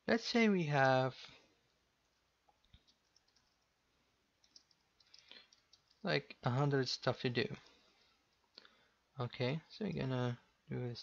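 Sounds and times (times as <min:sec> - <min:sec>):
keyboard keystrokes: 0:04.4 - 0:06.0.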